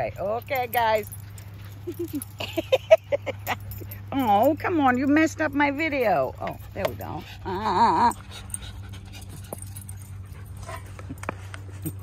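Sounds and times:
dogs panting: 0.0 - 12.0.

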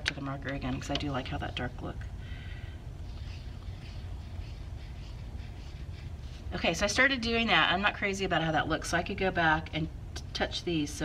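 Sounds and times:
steady low hum: 0.0 - 11.0
marker scratching on paper: 3.0 - 7.0.

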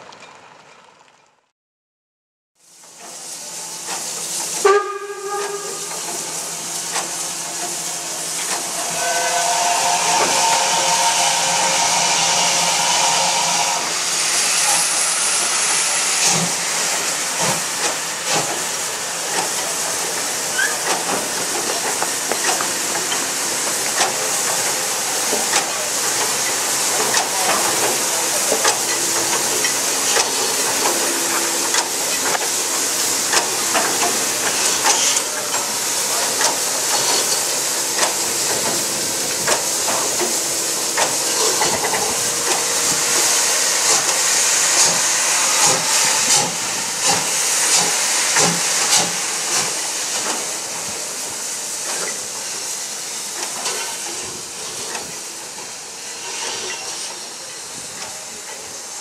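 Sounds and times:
hiss of escaping steam: 2.6 - 59.0
steam whistle: 4.6 - 6.0, 8.6 - 16.4.

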